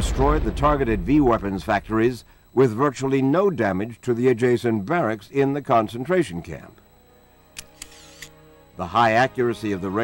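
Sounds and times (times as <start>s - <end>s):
man narrating: 0.0s - 6.8s, 8.8s - 10.0s
faint held music chord: 5.6s - 7.6s, 8.3s - 10.0s
camera shutter clicks: 7.5s - 8.4s.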